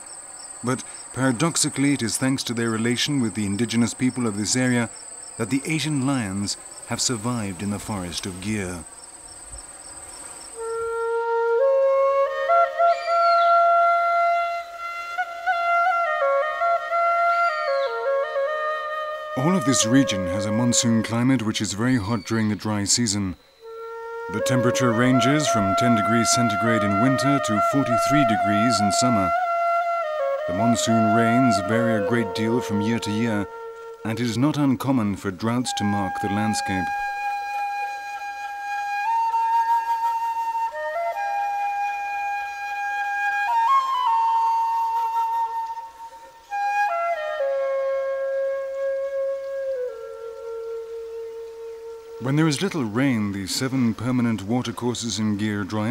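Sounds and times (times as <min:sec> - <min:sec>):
insects trilling: 0:00.0 - 0:55.9
flute melody: 0:10.6 - 0:52.7.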